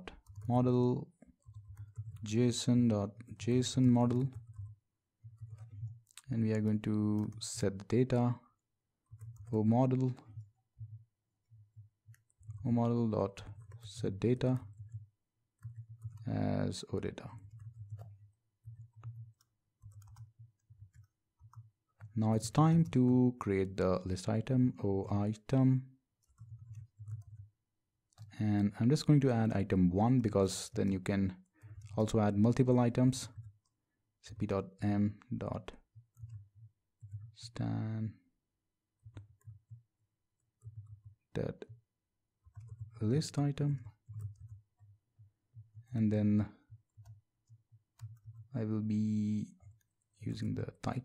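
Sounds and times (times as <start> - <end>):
faint typing on keyboard: 0.0 - 51.0.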